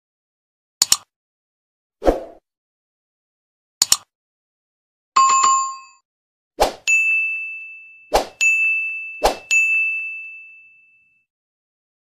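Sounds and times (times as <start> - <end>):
bright ding: 6.9 - 11.2.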